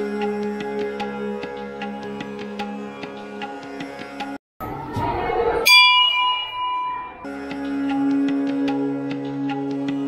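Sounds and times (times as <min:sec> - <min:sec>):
temple bell ringing: 0:05.2 - 0:07.5.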